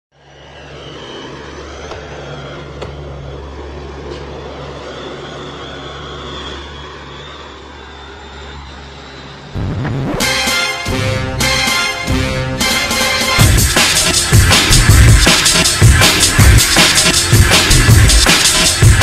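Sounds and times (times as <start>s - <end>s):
low engine drone: 0.1s - 19.0s
loud music: 9.6s - 19.0s.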